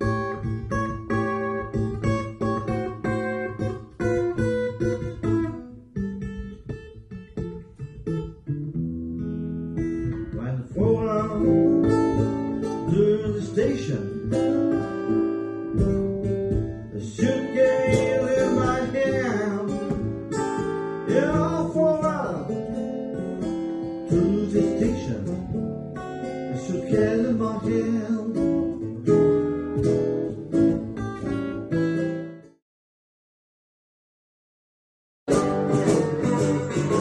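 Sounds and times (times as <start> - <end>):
acoustic guitar playing: 0.0 - 32.6, 35.3 - 37.0
man singing: 10.2 - 14.6, 16.9 - 20.2, 21.0 - 22.9, 24.0 - 25.6, 26.4 - 28.9.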